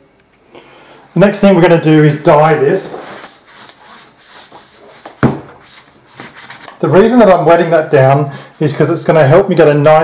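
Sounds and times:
hands rubbing wet leather: 0:03.1 - 0:06.7.

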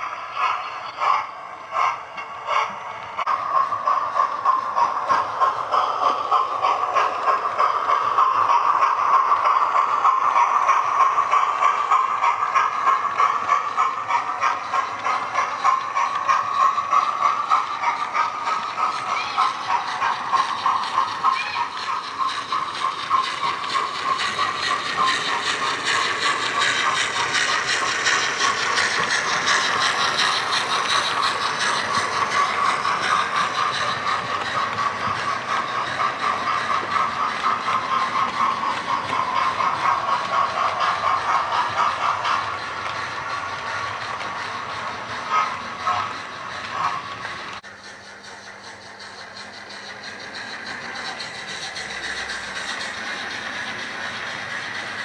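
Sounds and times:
wheels clicking over track: 0:00.0 - 0:55.0
model train motor whine: 0:03.3 - 0:55.0.

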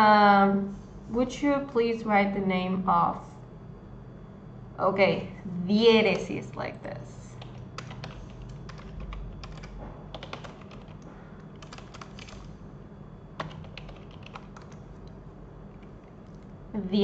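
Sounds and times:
faint low hum: 0:00.0 - 0:17.0
computer keyboard typing: 0:07.3 - 0:12.6, 0:13.4 - 0:16.5.

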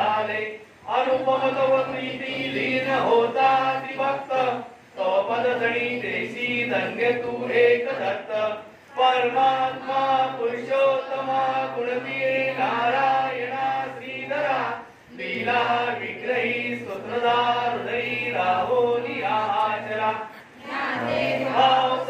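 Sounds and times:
voices chanting in unison: 0:00.0 - 0:22.0.

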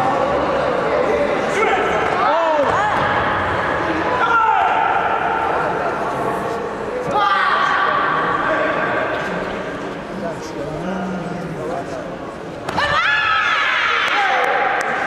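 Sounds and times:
people shouting and calling out: 0:01.4 - 0:05.9
background of voices: 0:04.9 - 0:12.7.

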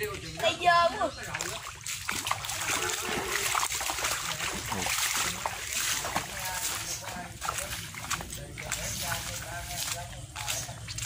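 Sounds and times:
water drips and splashes: 0:00.0 - 0:11.0.

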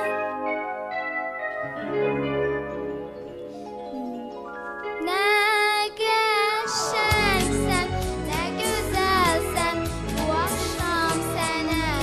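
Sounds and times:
light keyboard backing music: 0:00.0 - 0:12.0
girl singing into microphone: 0:05.0 - 0:12.0.

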